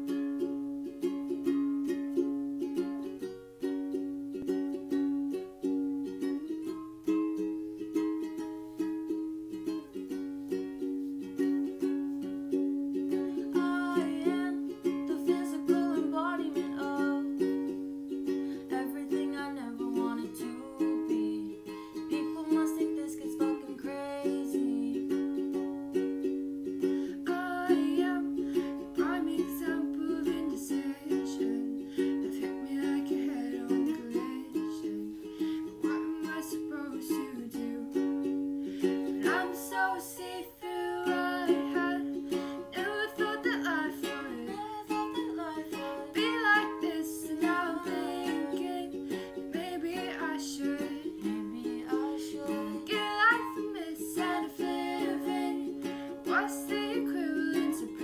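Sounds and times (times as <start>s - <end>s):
ukulele strumming: 0.0s - 58.0s
woman singing: 12.9s - 25.8s, 26.8s - 58.0s.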